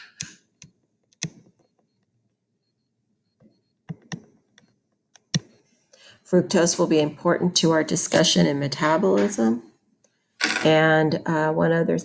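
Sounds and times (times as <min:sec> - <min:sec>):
stylus tapping on tablet screen: 0:03.8 - 0:05.6.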